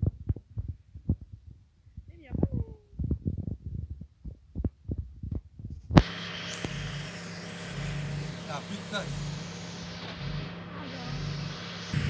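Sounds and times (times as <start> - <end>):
microphone handling thumps: 0.0 - 7.0
steady hiss with low hum: 5.6 - 12.0
gliding voice-like sound: 7.9 - 12.0.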